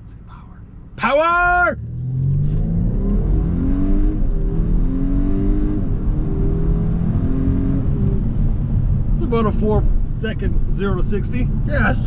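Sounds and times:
road noise rumble: 0:00.0 - 0:12.0
car engine accelerating: 0:01.4 - 0:12.0.

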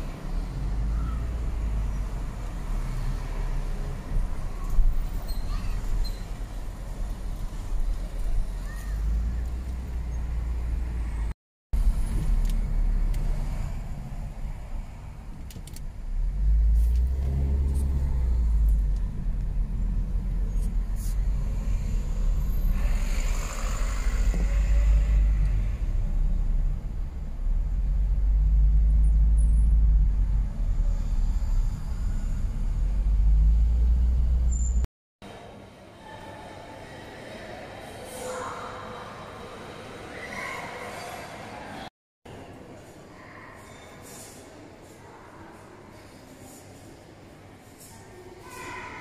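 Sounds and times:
traffic rumble: 0:00.0 - 0:34.9.

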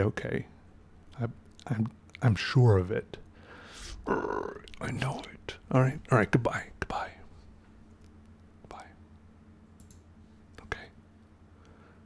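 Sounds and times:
faint steady hum: 0:00.0 - 0:12.0
softly spoken word: 0:10.6 - 0:11.0.

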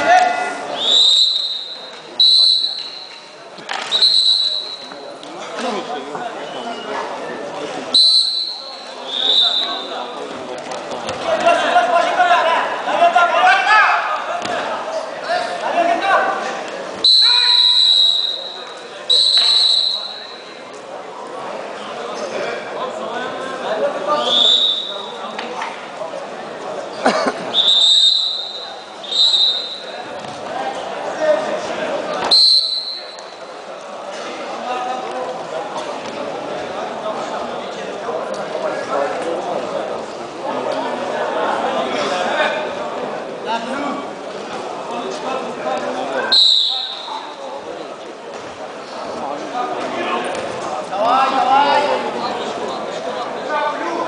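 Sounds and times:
murmur of crowd voices: 0:00.0 - 0:54.0
spectator chatter: 0:00.0 - 0:54.0
referee's whistle blasts: 0:00.7 - 0:05.0, 0:07.9 - 0:10.0, 0:17.0 - 0:20.5, 0:24.2 - 0:25.2, 0:27.5 - 0:30.0, 0:32.2 - 0:33.4, 0:46.3 - 0:47.4.

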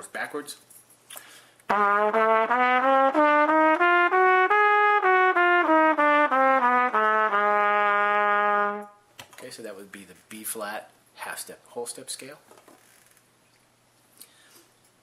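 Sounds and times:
trumpet playing a scale: 0:01.7 - 0:09.0.

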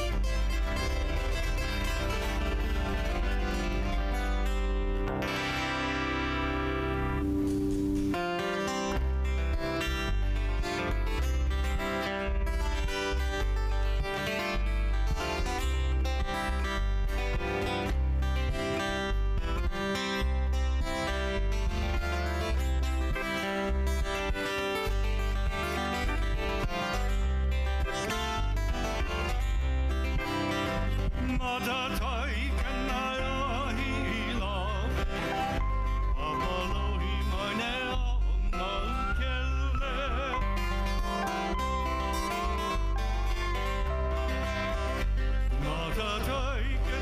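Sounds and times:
electric bass: 0:00.0 - 0:47.0
lap steel guitar: 0:00.0 - 0:47.0
picked acoustic guitar: 0:00.0 - 0:47.0
man singing: 0:31.0 - 0:47.0.

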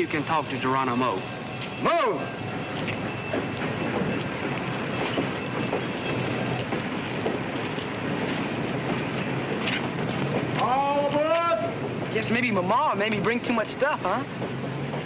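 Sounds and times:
standing train rumble and hiss: 0:00.0 - 0:15.0
faint knocks and clatter: 0:02.8 - 0:10.6, 0:14.3 - 0:15.0.

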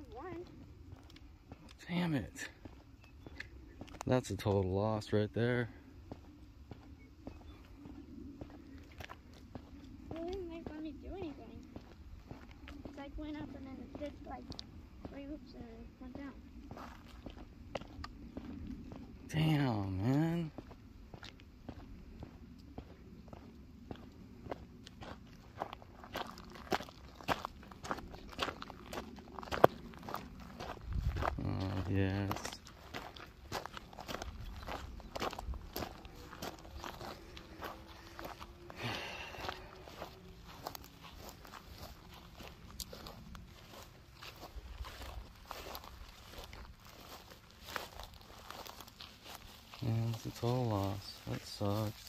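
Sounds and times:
footsteps on gravel and grass: 0:00.0 - 0:52.0.

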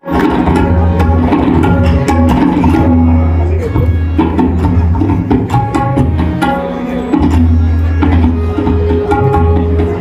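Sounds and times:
harmonium melody: 0:00.0 - 0:10.0
tabla drumming: 0:00.0 - 0:10.0.

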